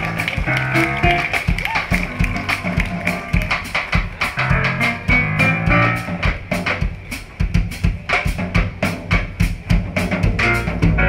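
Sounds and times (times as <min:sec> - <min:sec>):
drum kit hits: 0:00.0 - 0:11.0
jazz band playing: 0:00.0 - 0:11.0.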